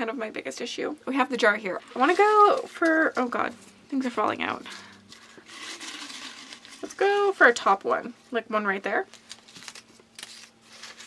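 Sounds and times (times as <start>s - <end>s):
paper slips rustling in glass jar: 5.1s - 7.1s.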